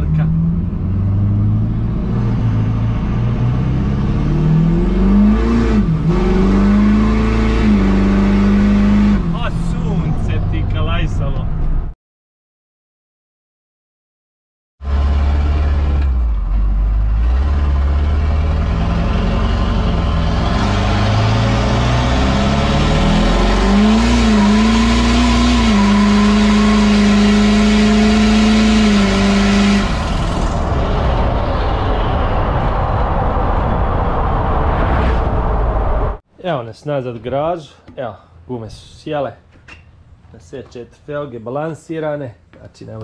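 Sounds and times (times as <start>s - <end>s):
diesel engine at full throttle: 0.0s - 11.7s, 14.8s - 36.2s
wind rushing past microphone: 30.1s - 36.2s.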